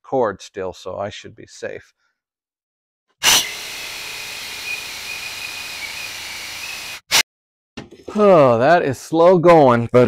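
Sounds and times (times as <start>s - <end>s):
saber saw cutting metal: 3.2s - 7.2s.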